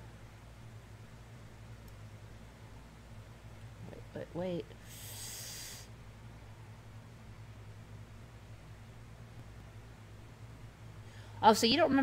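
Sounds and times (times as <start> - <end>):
faint low hum: 0.0 - 12.0
person's breathy hiss: 4.8 - 5.9.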